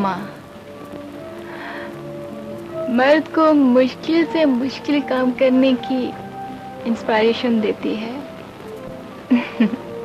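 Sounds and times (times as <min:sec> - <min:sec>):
woman speaking: 0:00.0 - 0:00.4, 0:02.9 - 0:06.2, 0:06.8 - 0:08.3
soft sustained film score: 0:00.0 - 0:10.0
steady hiss: 0:00.0 - 0:10.0.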